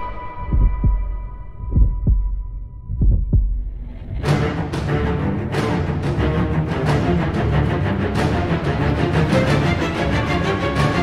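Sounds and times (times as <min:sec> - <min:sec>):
heartbeat thumps: 0:00.3 - 0:04.3.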